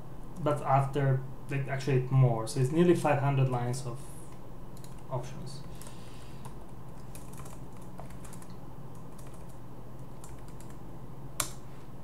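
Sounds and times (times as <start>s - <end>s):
low steady hum: 0.0s - 12.0s
computer keyboard typing: 4.8s - 10.8s.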